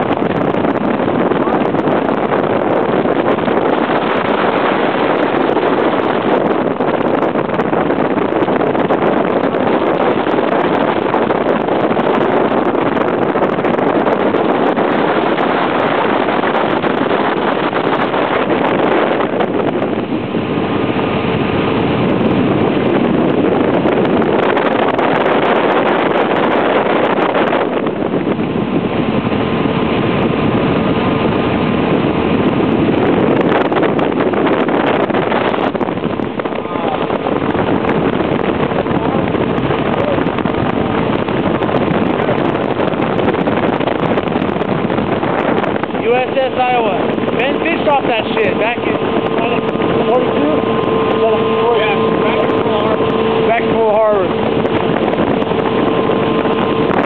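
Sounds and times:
motorboat engine running: 0.0s - 57.0s
wind buffeting microphone: 0.0s - 57.0s.

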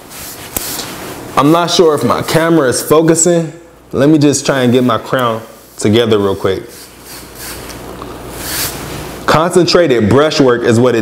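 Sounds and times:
brush bristles rubbing hair: 0.0s - 1.2s, 4.7s - 9.2s.

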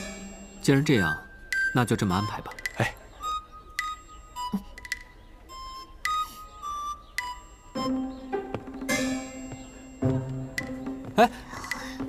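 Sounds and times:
soft picked-note music: 0.0s - 11.8s.

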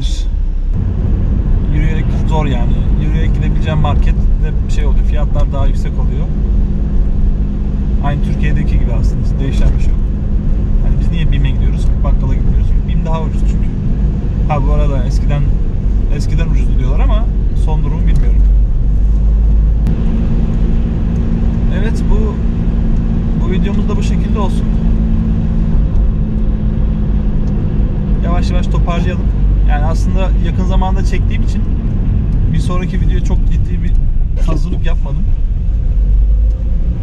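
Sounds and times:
car engine and road noise: 0.0s - 37.0s.

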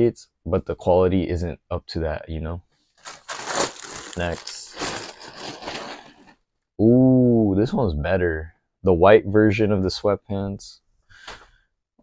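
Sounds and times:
garments rustling: 2.9s - 6.4s
man saying ooh: 6.8s - 8.1s.

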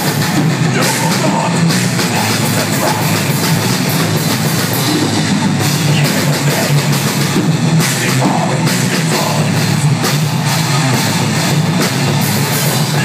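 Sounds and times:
heavy metal band playing: 0.0s - 13.0s.

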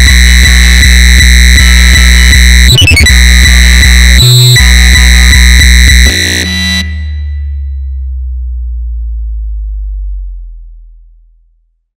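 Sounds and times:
high synth layer: 0.0s - 7.8s
long low bass note: 0.0s - 11.8s.

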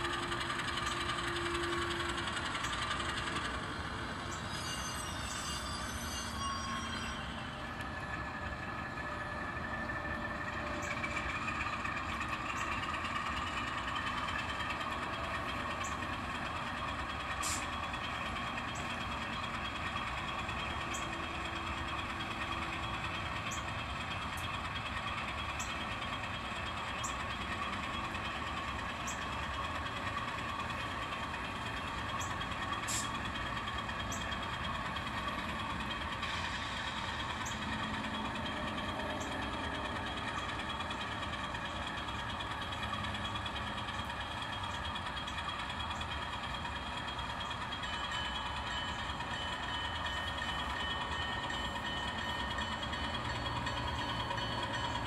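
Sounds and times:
model train mechanical drone: 0.0s - 55.0s.

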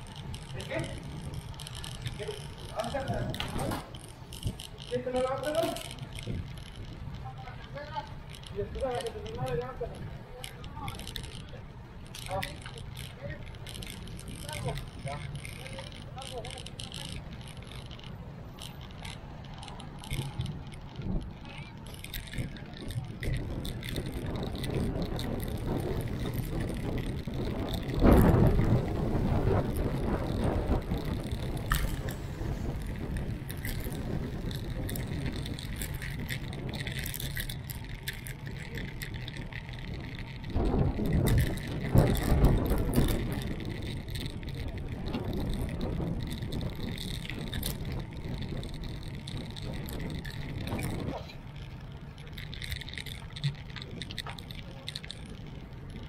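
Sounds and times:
wind rushing over microphone: 0.0s - 18.4s, 19.2s - 56.0s
road traffic noise: 0.0s - 56.0s.

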